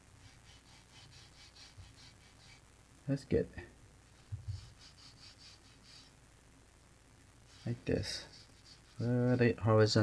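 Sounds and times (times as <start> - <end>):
flat brush strokes on paper: 0.0 - 2.6, 4.1 - 6.1, 7.4 - 10.0.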